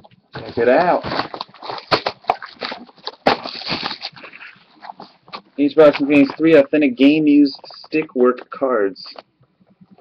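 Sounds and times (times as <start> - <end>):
cardboard box scraping and knocking: 0.3 - 6.5.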